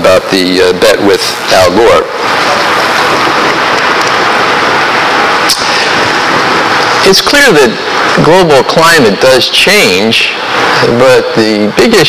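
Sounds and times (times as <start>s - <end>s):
loud steady hiss: 0.0s - 12.0s.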